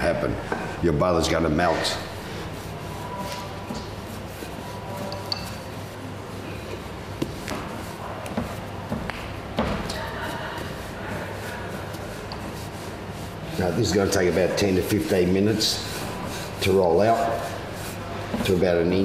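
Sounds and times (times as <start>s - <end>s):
steady workroom hum: 0.0s - 19.0s.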